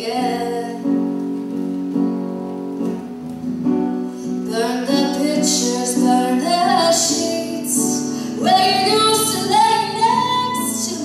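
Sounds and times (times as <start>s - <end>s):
country instrumental accompaniment: 0.0s - 11.0s.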